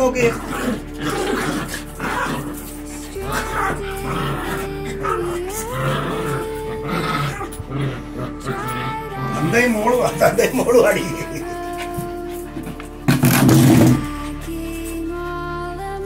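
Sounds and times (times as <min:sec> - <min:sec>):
small dogs growling: 0:00.0 - 0:14.5
music of long held notes: 0:00.0 - 0:16.0.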